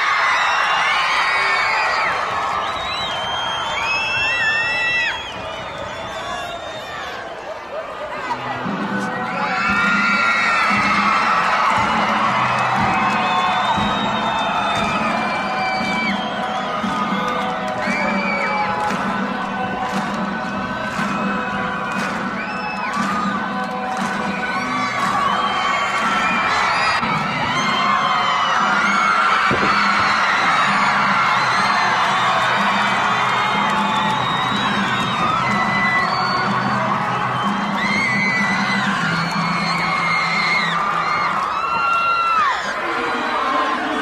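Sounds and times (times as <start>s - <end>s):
arena crowd cheering and screaming: 0.0s - 44.0s
music with steady beat: 8.5s - 41.5s.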